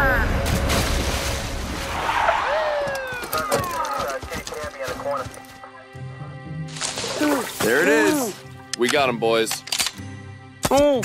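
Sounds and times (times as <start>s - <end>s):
running footsteps: 2.8s - 6.0s.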